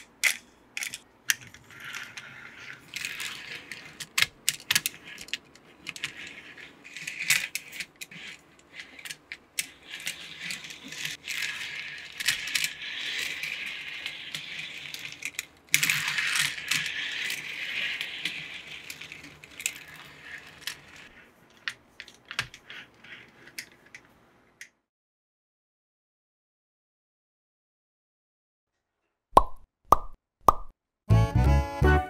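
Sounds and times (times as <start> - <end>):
toy cars rolling on plastic track: 0.0 - 24.1.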